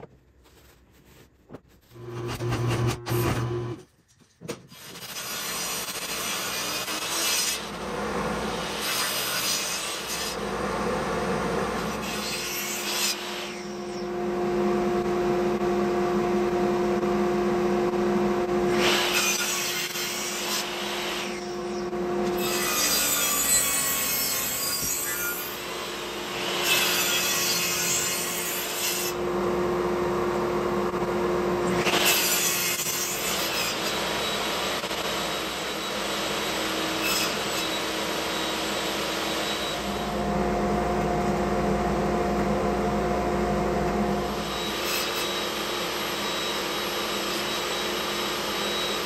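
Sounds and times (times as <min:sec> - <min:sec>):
table saw humming: 0:01.9 - 0:03.8, 0:05.3 - 0:49.0
saw blade cutting wood: 0:04.5 - 0:07.8, 0:08.5 - 0:10.5, 0:11.8 - 0:14.1, 0:18.7 - 0:29.2, 0:31.7 - 0:40.1, 0:44.3 - 0:49.0.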